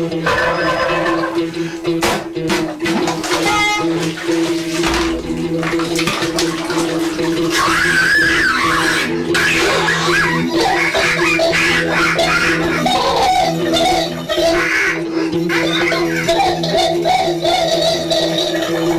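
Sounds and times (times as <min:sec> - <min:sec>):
bath water splashing: 0:00.3 - 0:18.9.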